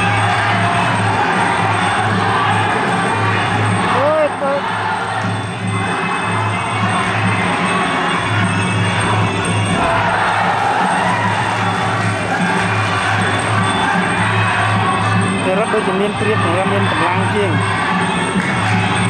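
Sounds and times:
loud arena crowd: 0.0 - 19.0
pulsing drum beat music: 0.0 - 19.0.

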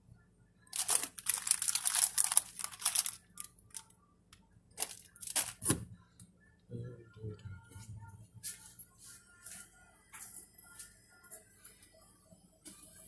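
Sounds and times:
crinkling handling noise on microphone: 0.7 - 3.9, 4.8 - 5.8.

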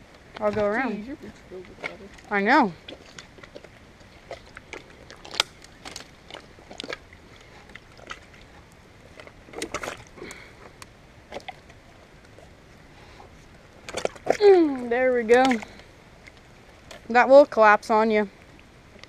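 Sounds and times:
wood snapping and cracking: 1.7 - 12.4.

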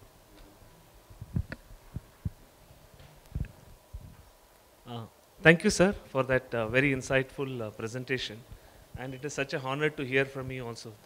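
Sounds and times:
microphone handling thumps: 1.2 - 4.3.

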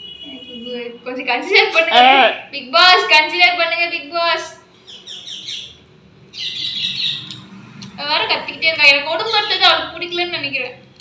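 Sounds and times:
birds chirping: 4.7 - 7.5.

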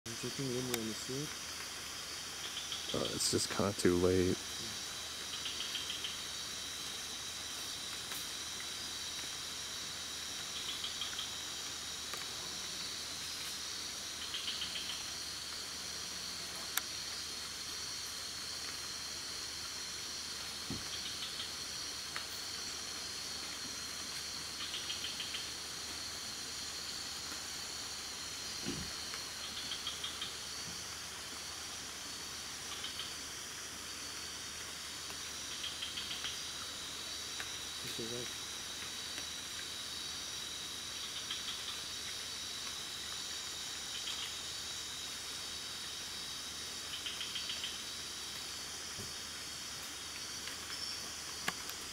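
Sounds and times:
insect rapid chirp: 0.1 - 51.9
insects buzzing: 0.1 - 51.9.

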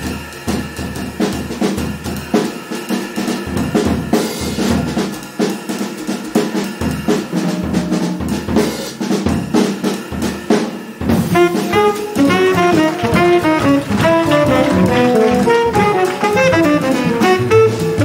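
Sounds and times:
drum kit solo played with sticks: 0.0 - 18.0
tom and bass drum strokes: 6.4 - 18.0
cymbal crashes: 6.6 - 12.2.

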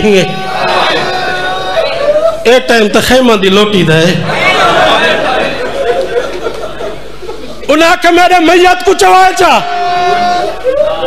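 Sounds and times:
man speaking through microphone: 0.0 - 0.5, 2.3 - 4.4, 7.7 - 9.7.

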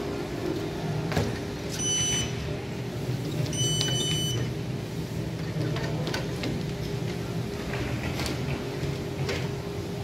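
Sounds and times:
high electronic beeps: 1.8 - 2.4, 3.5 - 4.5.

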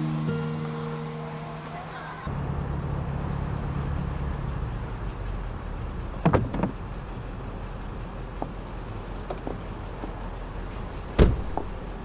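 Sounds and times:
soft music: 0.0 - 2.3
car engine idling: 0.0 - 12.0.

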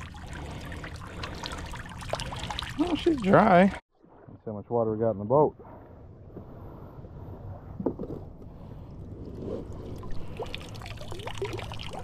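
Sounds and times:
water trickling and splashing: 0.0 - 4.6, 8.7 - 12.0.

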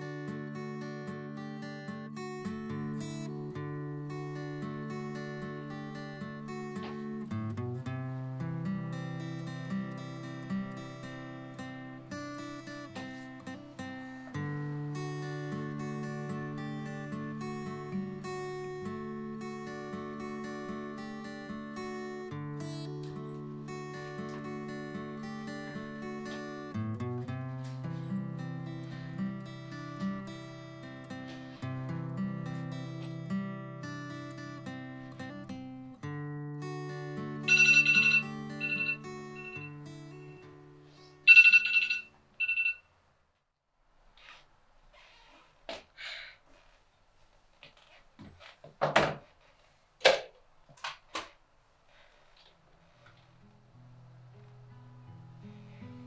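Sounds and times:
gentle guitar music: 0.0 - 42.6, 53.0 - 56.0
phone ringtone high beeps: 37.5 - 39.7, 41.3 - 42.8.

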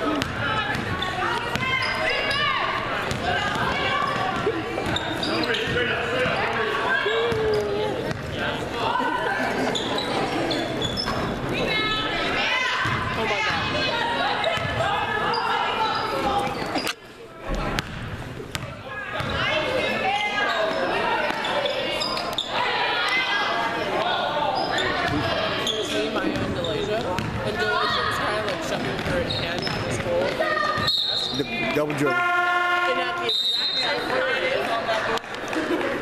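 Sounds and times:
voices echoing in gym: 0.0 - 36.0
basketball bouncing on wooden court: 0.1 - 1.9, 3.0 - 6.4, 7.3 - 8.4, 17.8 - 19.4, 26.4 - 27.5, 28.5 - 30.9.

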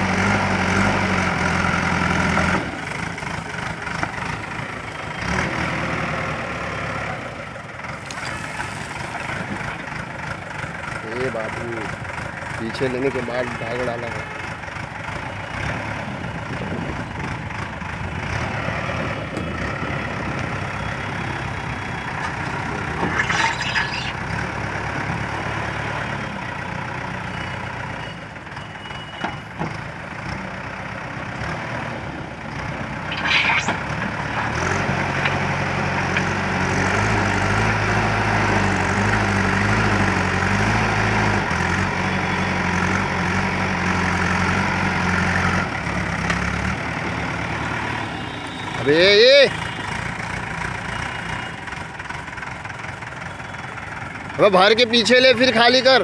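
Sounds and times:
diesel engine working under load: 0.0 - 56.0
brief high-pitched sounds: 22.8 - 24.2, 33.1 - 34.0.

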